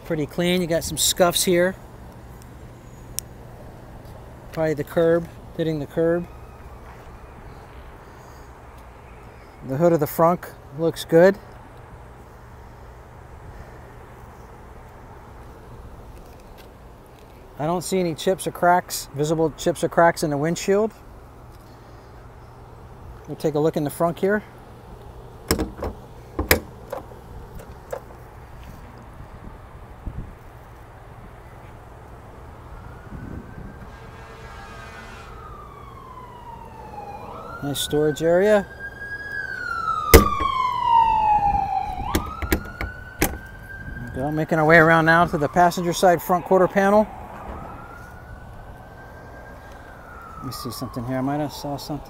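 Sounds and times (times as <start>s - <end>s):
faint siren wailing: 4.6s - 10.1s, 31.0s - 52.0s
trunk lid latch clicks and knocks: 25.5s - 28.2s, 40.2s - 40.6s, 42.1s - 43.5s.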